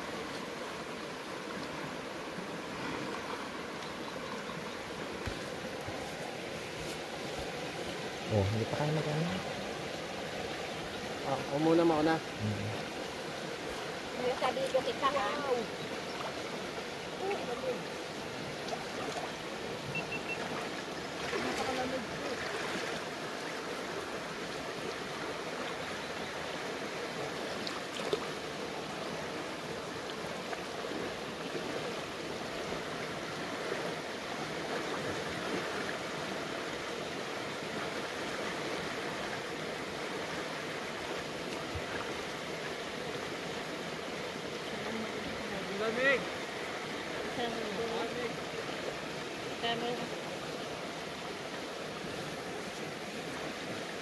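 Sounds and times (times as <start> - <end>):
creek water rushing: 0.0 - 54.0
people wading through water: 0.0 - 54.0.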